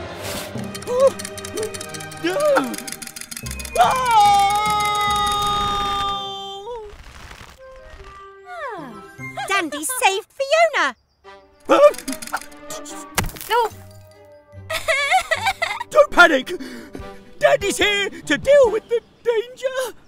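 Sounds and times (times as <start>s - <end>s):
light background music: 0.0s - 6.0s, 7.6s - 19.6s
fast rattle of clicks: 0.6s - 5.5s, 11.8s - 12.6s.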